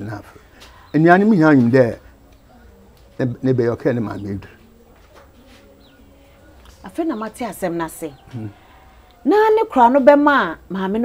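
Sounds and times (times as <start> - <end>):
man speaking: 0.0 - 2.1, 3.2 - 4.6, 8.3 - 8.6.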